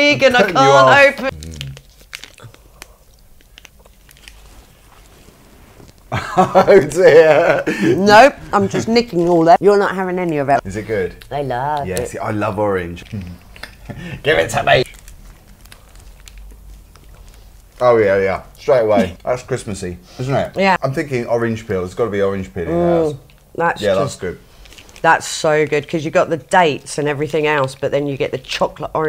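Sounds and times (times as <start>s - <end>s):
plastic wrapper crinkling: 1.3s - 6.1s, 14.6s - 18.8s, 24.5s - 25.1s.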